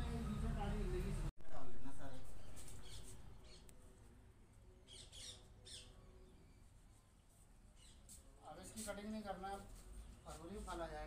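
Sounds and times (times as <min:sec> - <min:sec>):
faint bird chirps: 0:02.4 - 0:03.8, 0:04.8 - 0:07.1.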